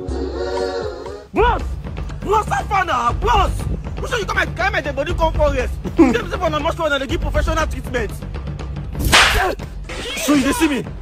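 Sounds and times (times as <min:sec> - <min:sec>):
faint background music: 0:00.0 - 0:11.0
whooshing swish: 0:09.0 - 0:09.5.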